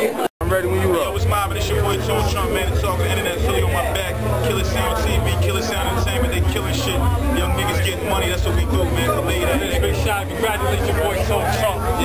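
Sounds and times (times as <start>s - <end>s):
men talking: 0.4s - 12.0s
music with heavy pulsing bass: 0.4s - 12.0s.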